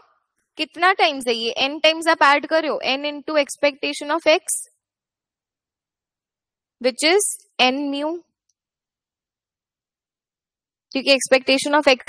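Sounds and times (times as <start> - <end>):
woman's voice: 0.6 - 4.7, 6.8 - 8.2, 11.0 - 12.0.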